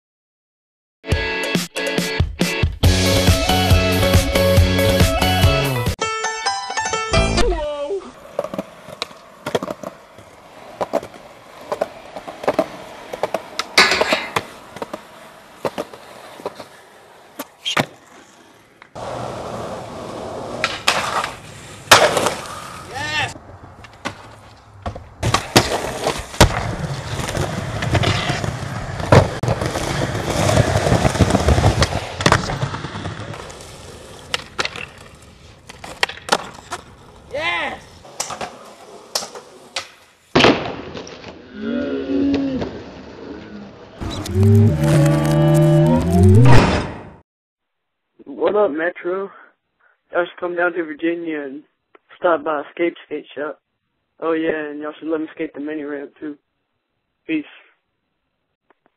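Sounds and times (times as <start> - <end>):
skateboard wheels rolling on concrete: 6.8 - 46.8
skateboard clacks: 8.2 - 37.4.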